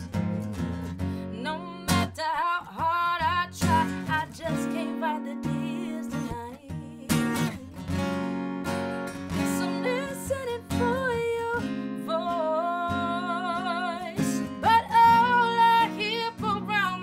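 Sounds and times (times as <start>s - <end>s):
woman singing with vibrato: 0.0s - 7.9s, 9.3s - 17.0s
strummed acoustic guitar: 0.0s - 17.0s.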